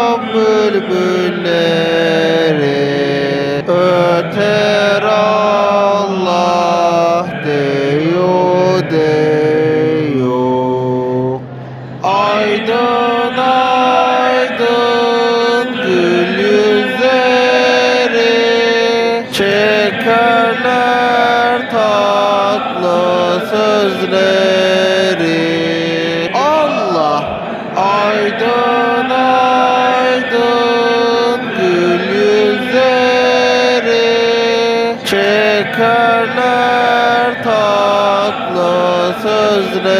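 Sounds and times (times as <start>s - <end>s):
low drone: 0.0s - 39.9s
solo voice chanting: 0.0s - 39.9s.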